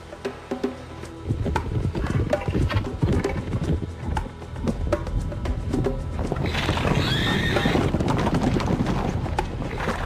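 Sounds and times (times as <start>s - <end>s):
horses galloping hoofbeats: 1.3s - 10.0s
horse whinnying: 6.4s - 8.0s.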